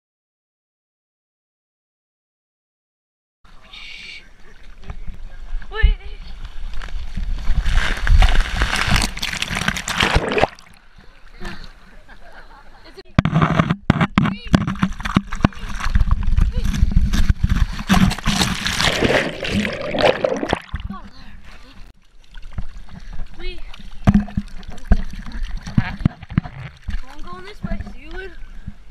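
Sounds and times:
water rushing and sloshing: 0:17.3 - 0:28.2.

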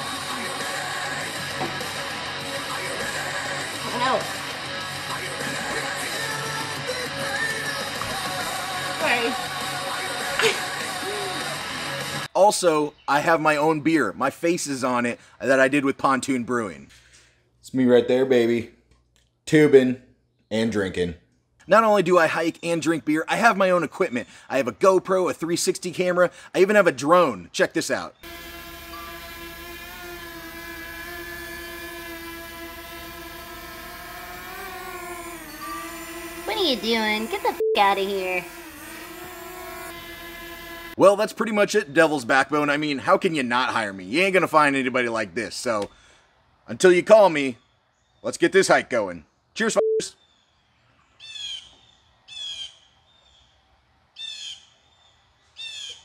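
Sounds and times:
drone propellers whining hum: 0:28.2 - 0:41.0
bird calling: 0:49.7 - 0:53.0.

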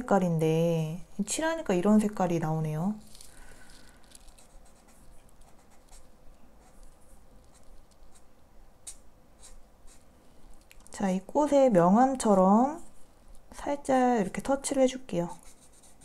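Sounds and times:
marker scratching on paper: 0:04.4 - 0:06.0, 0:06.6 - 0:10.1, 0:15.3 - 0:16.0.

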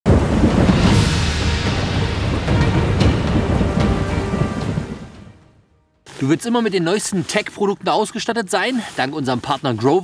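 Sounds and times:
low thunder rumble: 0:00.1 - 0:05.6
rain: 0:00.1 - 0:06.3
background music: 0:00.1 - 0:07.1.

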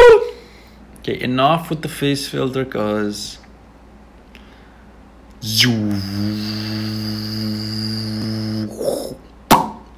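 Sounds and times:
man singing long ooh tone: 0:05.4 - 0:09.2.

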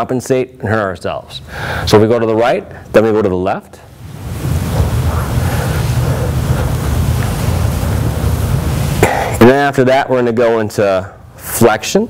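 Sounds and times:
low rumbling microphone noise: 0:03.8 - 0:10.0.

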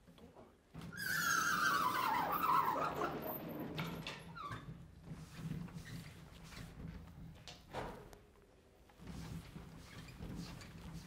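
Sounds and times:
sliding panels squealing: 0:01.0 - 0:04.7.

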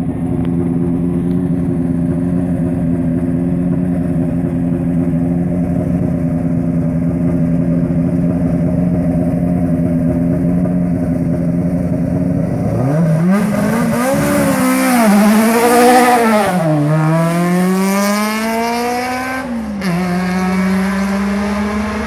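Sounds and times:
race car engine revving: 0:11.2 - 0:22.0.

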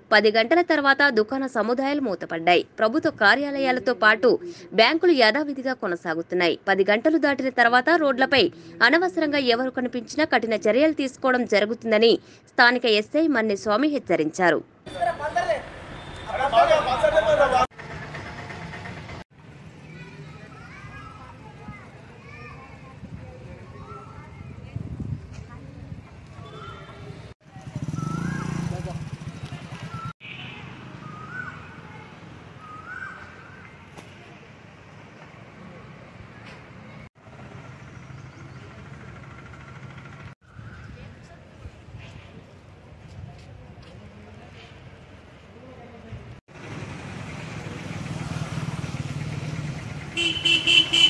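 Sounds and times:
vehicle engine rumbling: 0:16.8 - 0:32.9, 0:33.7 - 0:51.0
bird whistled call: 0:29.8 - 0:33.8.

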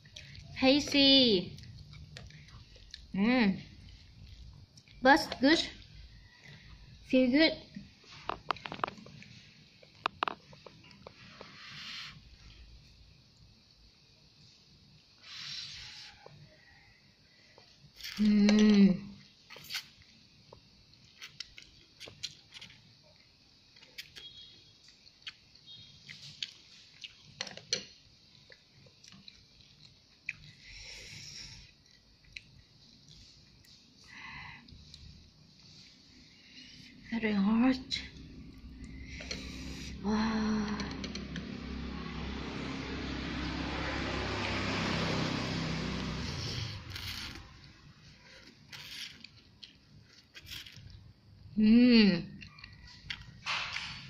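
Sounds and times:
faint room noise: 0:00.0 - 0:54.0
noodles slurped and chewed: 0:38.0 - 0:40.0, 0:43.6 - 0:51.1.

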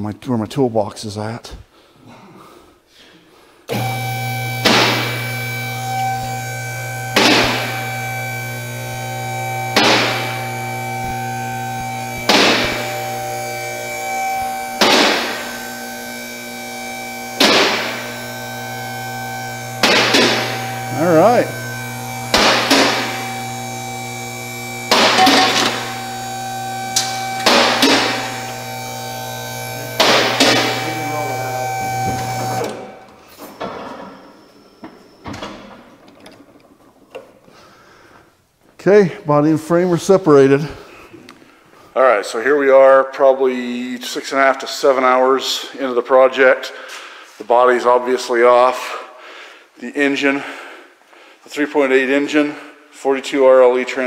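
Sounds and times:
hydraulic power unit running: 0:03.7 - 0:38.4.

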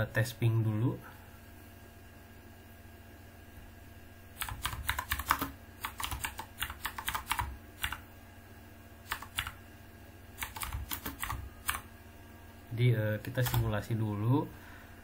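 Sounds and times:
computer keyboard typing: 0:04.4 - 0:08.0, 0:09.1 - 0:09.6, 0:10.4 - 0:11.9, 0:13.2 - 0:13.9.

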